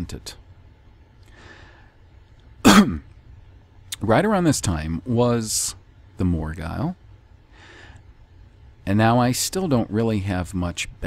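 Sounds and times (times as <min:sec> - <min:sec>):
man clearing his throat: 0:02.6 - 0:03.2.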